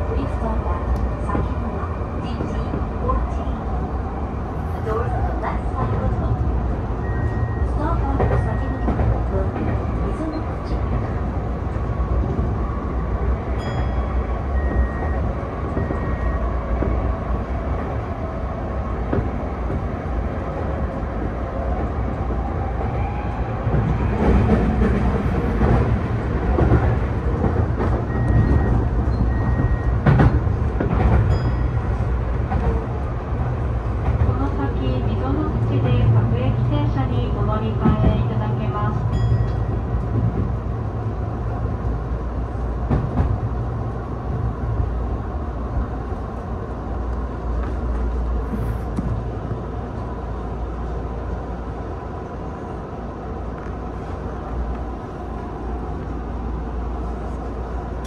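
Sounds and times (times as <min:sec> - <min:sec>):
train wheels rumbling on rail: 0:00.0 - 0:58.0.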